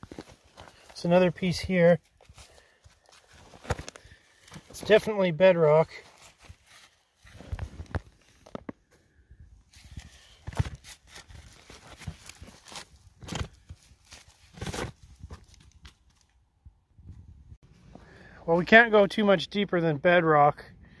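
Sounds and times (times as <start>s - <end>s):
rock and gravel crunching: 0.0s - 8.8s.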